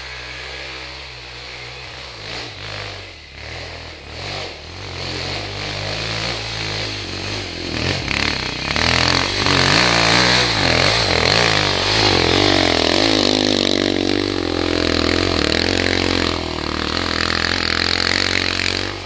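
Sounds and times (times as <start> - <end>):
dirt bike engines revving: 0.0 - 19.0.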